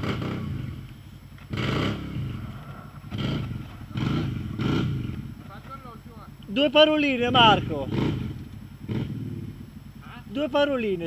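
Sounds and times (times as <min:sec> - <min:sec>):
quad bike engine revving: 0:00.0 - 0:11.0.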